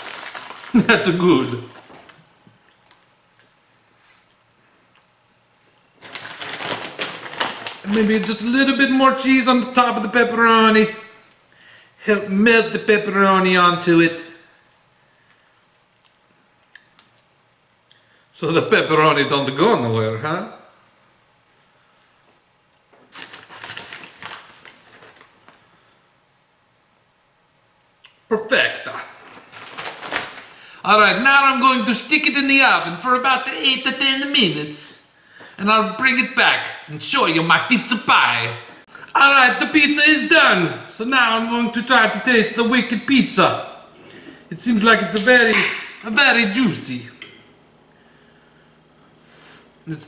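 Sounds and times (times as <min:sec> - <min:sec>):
plastic bag crinkling: 0:00.0 - 0:03.5, 0:06.0 - 0:08.5, 0:23.0 - 0:25.6, 0:29.2 - 0:30.7.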